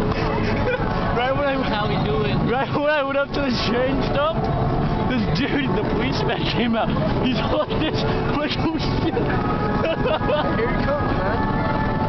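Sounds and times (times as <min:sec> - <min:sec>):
crowd noise: 0:00.0 - 0:12.0
traffic noise: 0:00.0 - 0:12.0.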